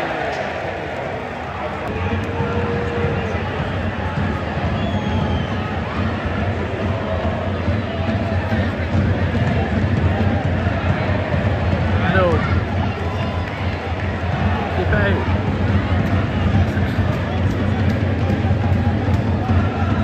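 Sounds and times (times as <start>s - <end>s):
individual fans shouting: 0.0s - 20.0s
stadium crowd voices: 0.0s - 20.0s.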